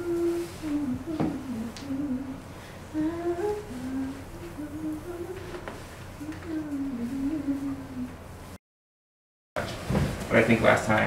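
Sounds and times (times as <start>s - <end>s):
woman humming a slow melody: 0.0s - 8.2s.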